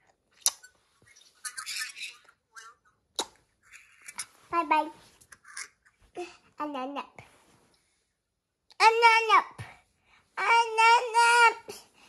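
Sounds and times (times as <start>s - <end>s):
child's breathy vocal noises: 11.6s - 12.0s.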